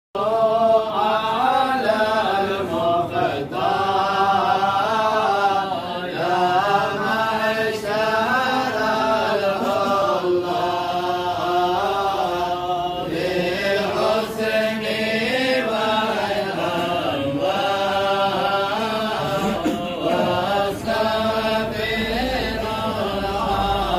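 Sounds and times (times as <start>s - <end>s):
men chanting in unison: 0.2s - 23.9s.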